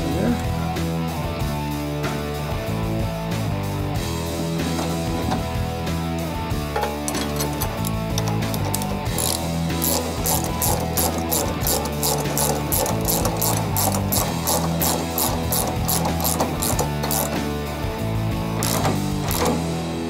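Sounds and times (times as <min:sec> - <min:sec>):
background music: 0:00.0 - 0:20.0
ratchet wrench clicking: 0:06.8 - 0:17.5, 0:18.6 - 0:19.6.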